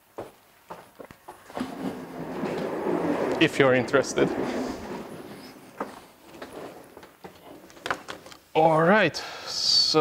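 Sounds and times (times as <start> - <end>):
chair rolling and scraping: 1.4 - 8.4.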